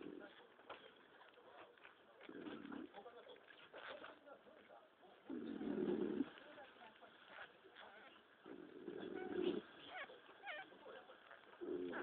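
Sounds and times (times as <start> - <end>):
faint puppy squeaks: 7.2 - 8.3, 8.9 - 12.0
puppies cooing grunts: 8.4 - 10.7, 11.6 - 12.0.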